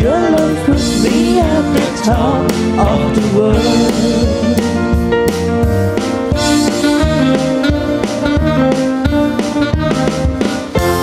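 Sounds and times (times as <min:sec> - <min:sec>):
acoustic guitar: 0:00.0 - 0:11.0
drums: 0:00.0 - 0:11.0
keyboard: 0:00.0 - 0:11.0.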